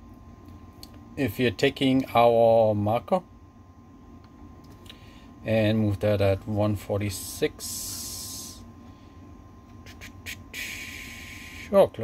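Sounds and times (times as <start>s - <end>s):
steady hiss: 7.0s - 8.8s, 9.8s - 12.0s.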